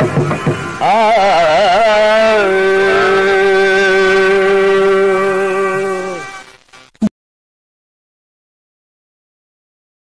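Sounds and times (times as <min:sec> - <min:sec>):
low drone: 0:00.0 - 0:06.4
man singing long note: 0:00.8 - 0:06.4.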